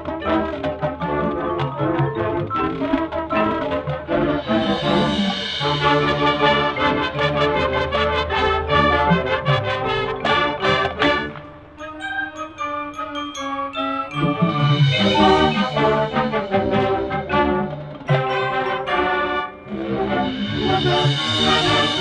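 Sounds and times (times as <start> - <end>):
marching band brass chords: 0.0 - 22.0
drum strikes: 2.7 - 11.1, 14.2 - 19.0, 19.6 - 22.0
high ringing notes: 4.4 - 8.0, 10.3 - 22.0.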